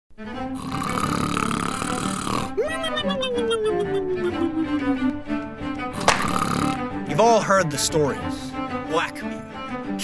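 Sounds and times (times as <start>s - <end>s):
background music with low notes: 0.1s - 10.0s
man snoring: 0.4s - 2.6s, 5.9s - 6.9s.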